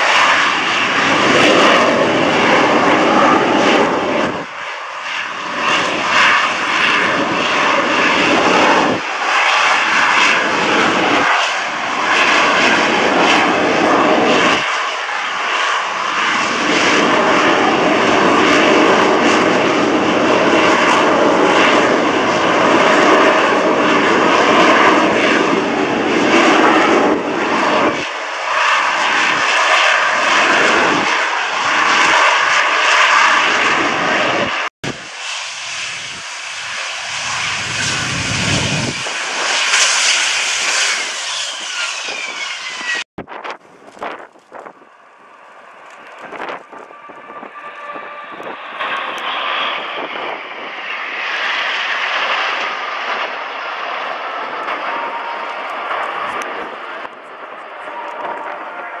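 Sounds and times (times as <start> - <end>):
jet engine roar: 0.0 - 59.0.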